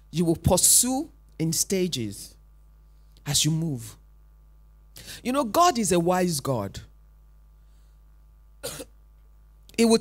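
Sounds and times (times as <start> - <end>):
faint sound system hum: 0.0 - 10.0
person coughing: 8.6 - 9.0.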